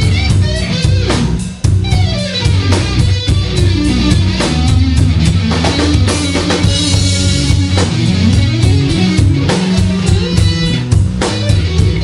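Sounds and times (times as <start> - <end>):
bass guitar: 0.0 - 12.0
drum kit: 0.0 - 12.0
electric guitar lead: 0.0 - 12.0.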